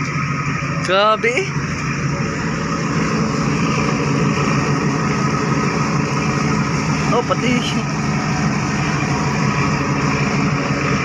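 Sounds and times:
ferry diesel engines humming: 0:00.0 - 0:11.0.

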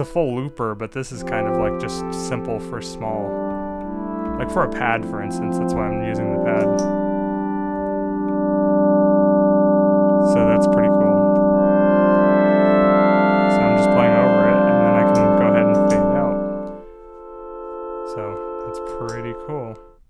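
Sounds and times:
synth notes wavering in pitch: 0:00.0 - 0:20.0
synthesizer pad drone: 0:01.2 - 0:19.9.

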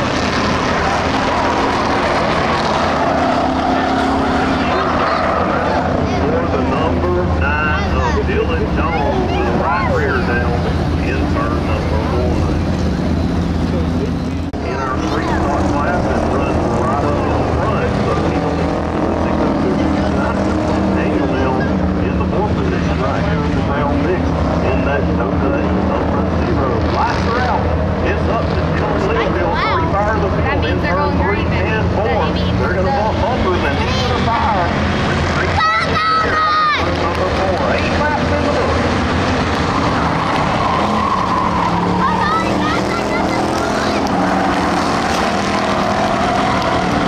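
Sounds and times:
race car engines running: 0:00.0 - 0:47.0.

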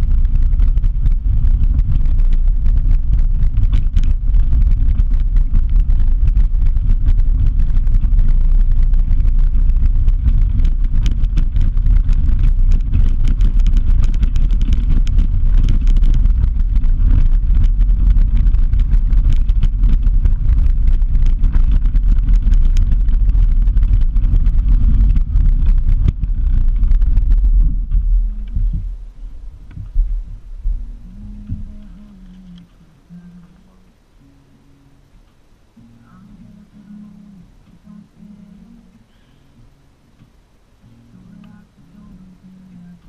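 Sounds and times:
wind buffeting: 0:00.0 - 0:32.4
gravel crackling and bumps: 0:00.0 - 0:33.8
vehicle rumble: 0:00.0 - 0:43.0.

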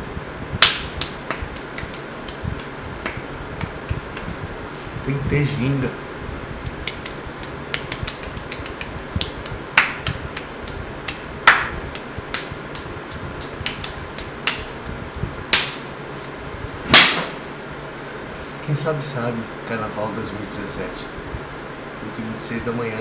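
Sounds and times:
sharp clicks and taps: 0:06.6 - 0:12.9
ringing cracks: 0:16.9 - 0:17.4.

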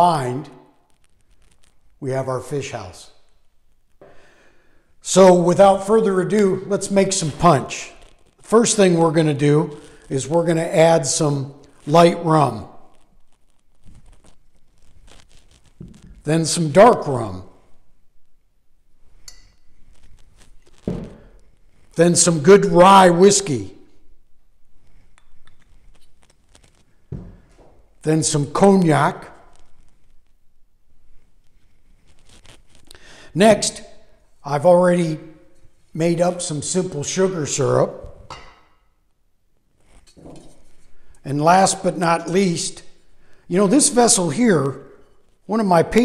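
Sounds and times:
bottle thumped down on table: 0:20.9 - 0:21.2.

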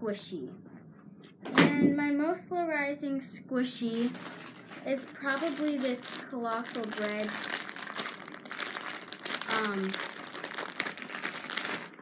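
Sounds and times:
crinkly material rustling: 0:03.8 - 0:12.0.

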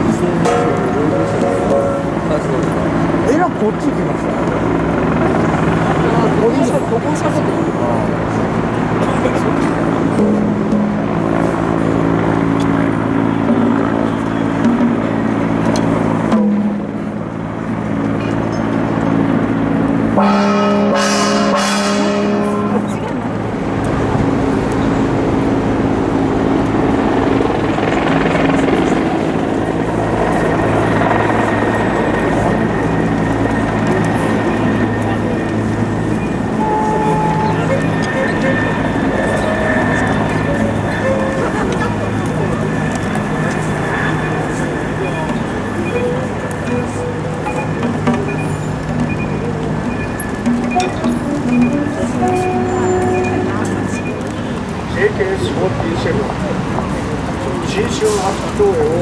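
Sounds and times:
several voices: 0:00.0 - 0:11.9, 0:27.4 - 0:59.0
city street traffic: 0:00.0 - 0:59.0
brief pitched sound: 0:36.2 - 0:38.6.

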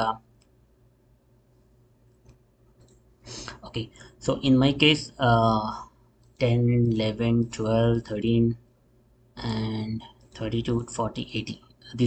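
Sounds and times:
man's voice: 0:03.7 - 0:08.6, 0:09.4 - 0:12.0.

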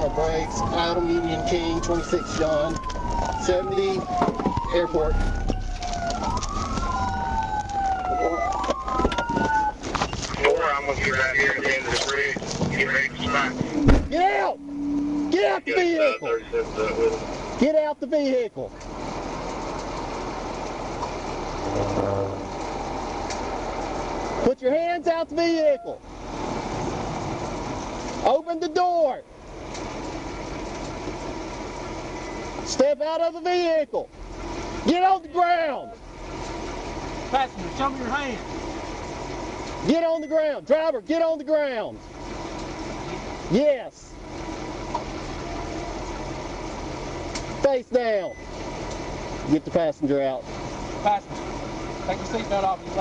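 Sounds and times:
vehicle engines running: 0:00.0 - 0:53.0
faint brief pitched sound: 0:21.6 - 0:22.5.

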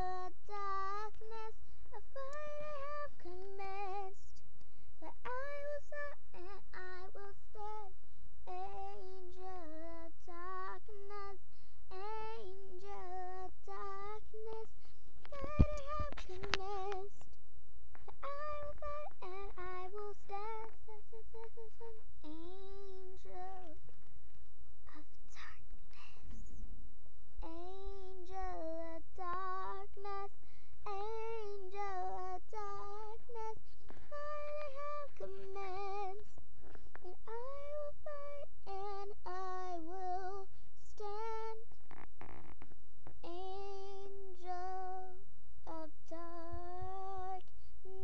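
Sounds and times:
child singing: 0:00.0 - 0:04.4, 0:05.0 - 0:17.4, 0:18.1 - 0:23.8, 0:24.8 - 0:26.6, 0:27.4 - 0:36.4, 0:37.0 - 0:48.0
child singing long notes: 0:18.2 - 0:23.8.

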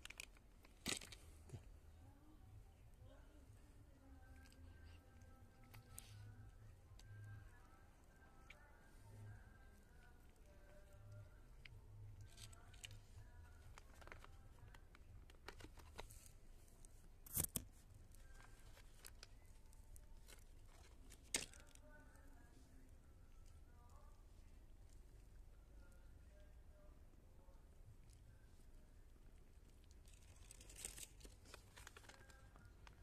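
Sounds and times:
plastic packet crinkling: 0:00.0 - 0:01.2, 0:30.0 - 0:33.0.

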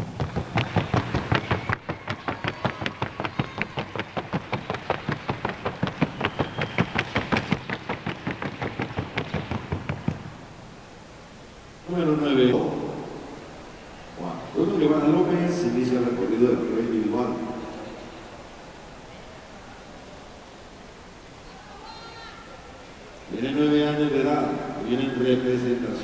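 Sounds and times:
horse hooves on hard track: 0:00.0 - 0:10.6.

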